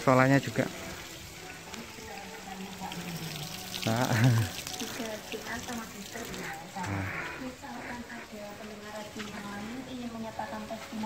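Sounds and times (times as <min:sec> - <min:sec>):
running water hiss: 0:00.0 - 0:11.0.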